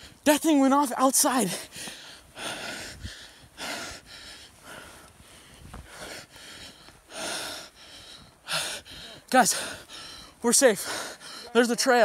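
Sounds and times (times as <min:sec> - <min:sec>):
person breathing hard: 0:01.5 - 0:11.6.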